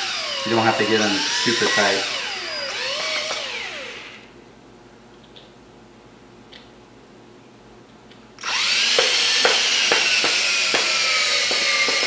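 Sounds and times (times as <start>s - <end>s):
cordless drill motor whine: 0.0s - 4.3s, 8.4s - 12.0s.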